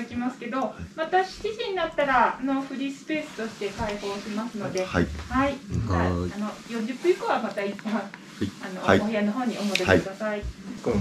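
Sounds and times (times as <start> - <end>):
men talking indistinctly: 4.7 - 6.4, 8.4 - 9.2, 9.8 - 11.0.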